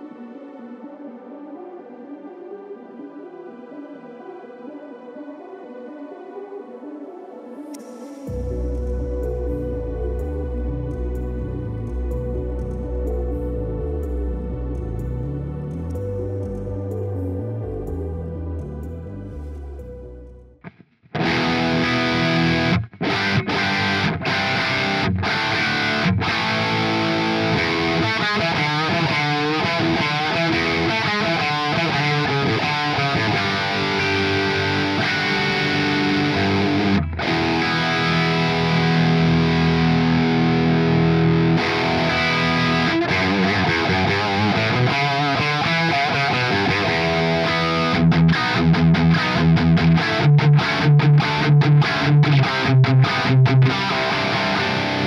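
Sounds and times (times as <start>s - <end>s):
distorted electric guitar: 20.6s - 55.0s.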